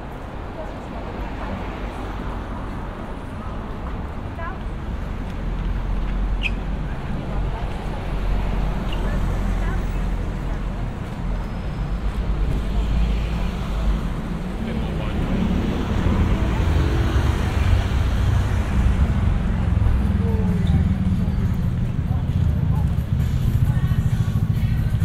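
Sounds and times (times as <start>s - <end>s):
passersby talking: 0.0s - 25.0s
traffic rumble: 0.0s - 25.0s.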